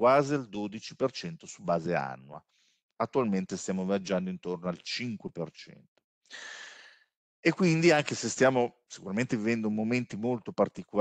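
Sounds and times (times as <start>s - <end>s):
man speaking: 0.0s - 2.4s, 3.0s - 5.8s, 7.5s - 11.0s
man breathing in: 6.3s - 7.2s.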